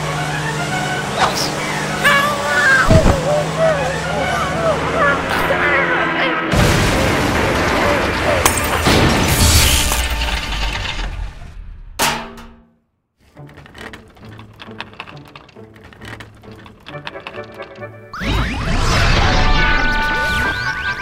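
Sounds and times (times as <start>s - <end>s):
crash and clatter: 6.5s - 12.5s.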